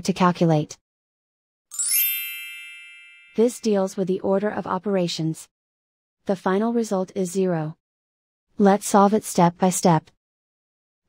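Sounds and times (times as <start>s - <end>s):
bright electronic chime: 1.7s - 3.7s.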